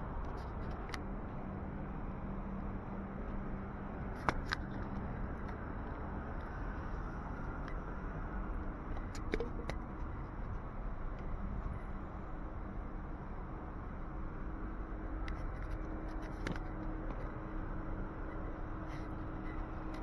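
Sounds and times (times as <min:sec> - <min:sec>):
traffic hum: 0:00.0 - 0:20.0.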